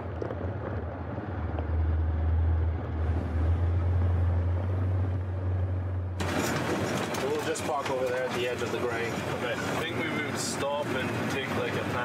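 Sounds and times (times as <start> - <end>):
diesel engine drone from inside cab: 0.0 - 12.0.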